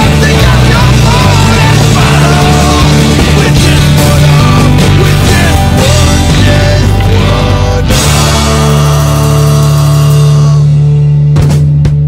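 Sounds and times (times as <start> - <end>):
rock band chord ringing: 0.0 - 12.0.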